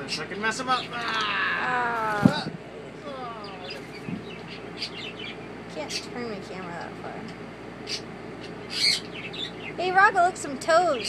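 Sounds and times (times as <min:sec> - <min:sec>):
faint bird chirps: 0:03.3 - 0:06.2, 0:07.8 - 0:10.0.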